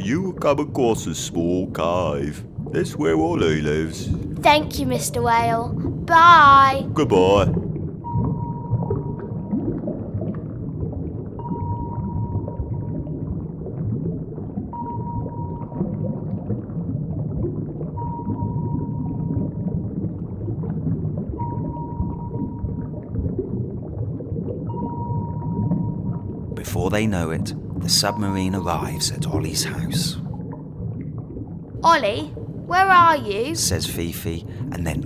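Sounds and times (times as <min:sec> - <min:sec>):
steady beep: 0:27.9 - 0:29.4.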